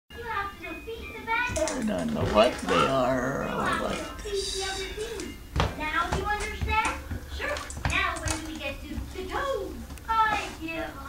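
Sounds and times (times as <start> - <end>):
young child talking: 0.2 - 11.0
person talking: 1.5 - 5.2.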